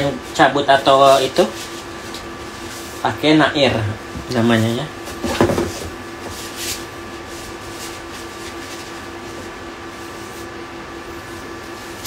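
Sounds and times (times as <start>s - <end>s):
room hum: 0.0s - 12.0s
handling knocks and rustles: 5.0s - 6.9s.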